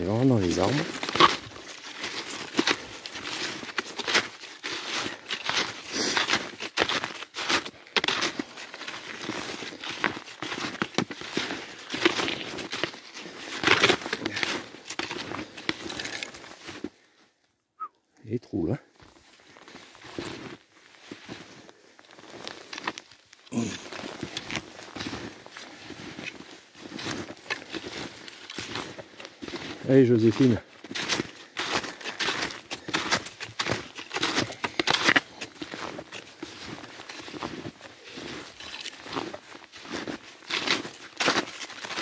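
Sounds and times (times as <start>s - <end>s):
snowshoes crunching through snow: 0.0s - 17.2s, 18.9s - 42.0s.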